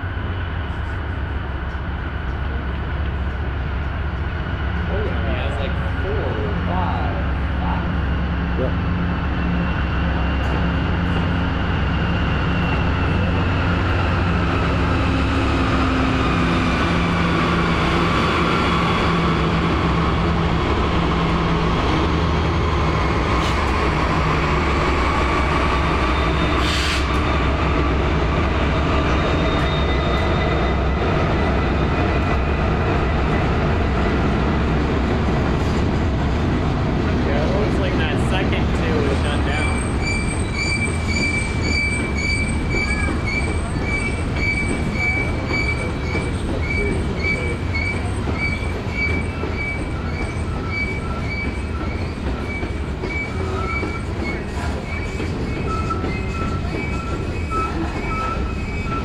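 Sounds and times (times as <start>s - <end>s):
locomotive engines droning: 0.0s - 59.0s.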